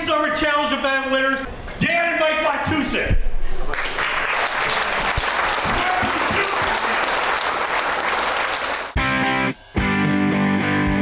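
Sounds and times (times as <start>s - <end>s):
audience applauding: 3.7s - 9.0s.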